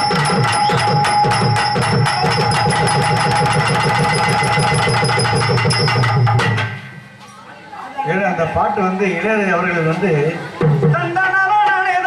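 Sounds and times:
held melody tones: 0.0 - 7.1
tabla drumming: 0.0 - 7.2, 10.5 - 12.0.

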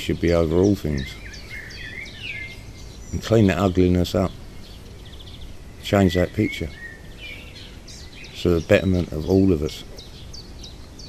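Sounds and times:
faint low background noise: 0.0 - 11.0
songbird warbling: 0.0 - 11.0.

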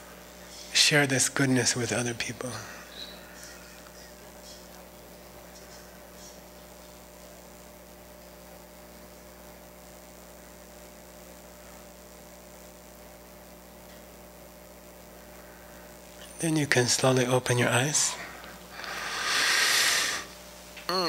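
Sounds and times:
electrical mains hum: 0.0 - 21.0
faint hiss: 14.9 - 20.9.

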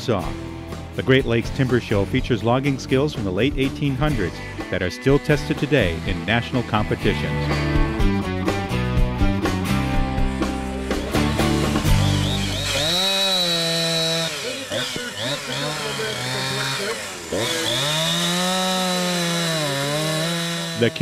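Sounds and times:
chainsaw cutting wood: 2.7 - 9.0, 9.6 - 21.0.

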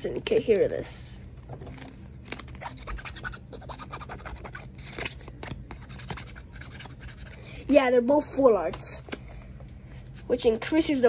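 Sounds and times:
cards scratching against plastic sleeve: 2.2 - 7.4.

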